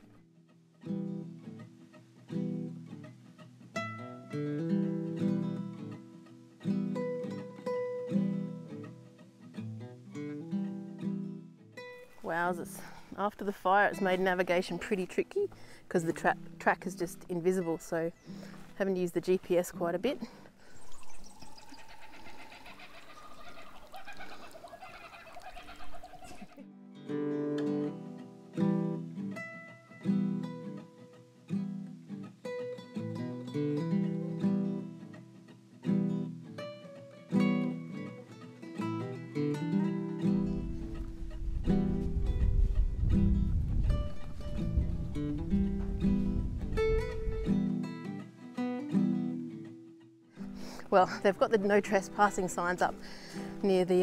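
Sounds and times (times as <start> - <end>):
plucked guitar music: 0.0 - 20.8, 25.8 - 54.0.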